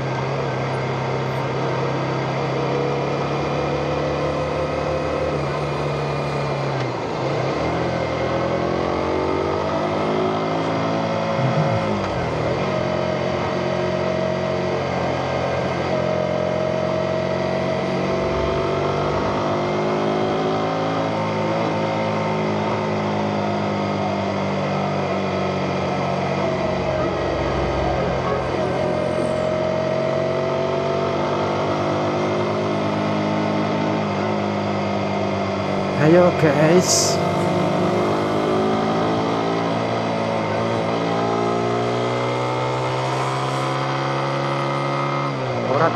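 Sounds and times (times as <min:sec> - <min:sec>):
motorcycle engine running: 0:00.0 - 0:45.9.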